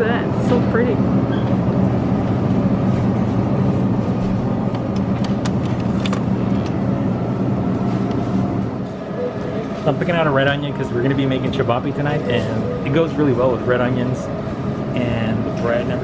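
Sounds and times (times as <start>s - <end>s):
supermarket hum: 0.0s - 16.0s.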